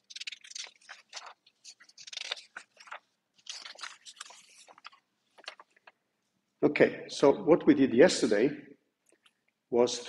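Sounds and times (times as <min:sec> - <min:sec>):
paper rustling and crinkling: 0:00.0 - 0:06.0.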